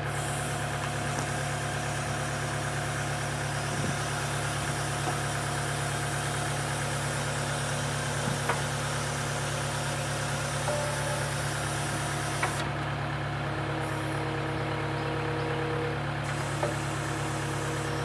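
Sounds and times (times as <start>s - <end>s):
diesel engine running: 0.0s - 18.0s.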